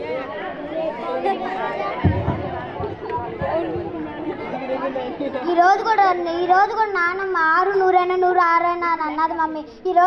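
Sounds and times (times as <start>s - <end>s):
overlapping voices chattering: 0.0s - 10.0s.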